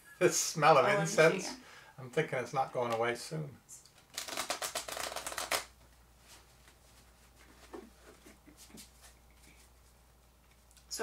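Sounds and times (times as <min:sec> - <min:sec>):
cards being shuffled: 0:04.0 - 0:05.8.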